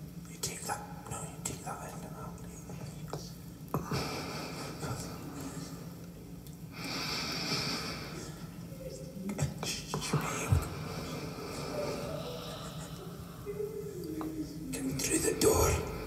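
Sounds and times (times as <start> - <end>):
breathy hiss: 0.3 - 16.0.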